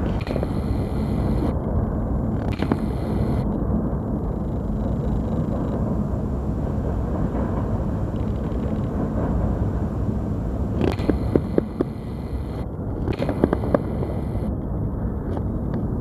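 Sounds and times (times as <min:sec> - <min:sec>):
sharp clicks: 0:00.0 - 0:01.6, 0:02.4 - 0:03.6, 0:10.8 - 0:14.5
freight train rumbling on bridge: 0:03.6 - 0:12.0.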